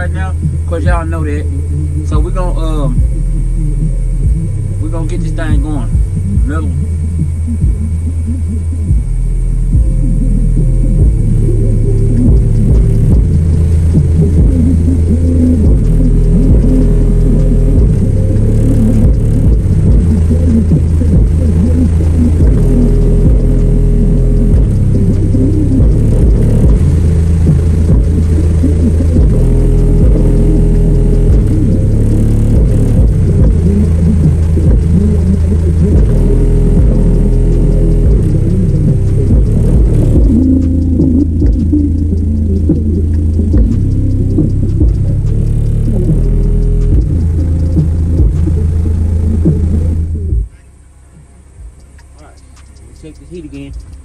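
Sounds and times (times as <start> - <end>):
bass-heavy music through subwoofer: 0.0 - 54.0.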